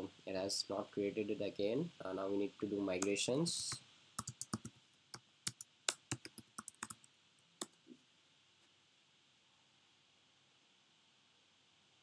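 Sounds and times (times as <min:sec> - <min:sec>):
computer keyboard typing: 0:03.0 - 0:04.7, 0:05.5 - 0:07.8.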